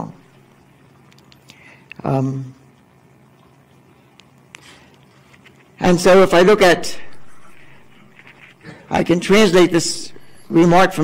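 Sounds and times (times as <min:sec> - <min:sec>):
man speaking: 0:05.8 - 0:07.7, 0:08.9 - 0:11.0.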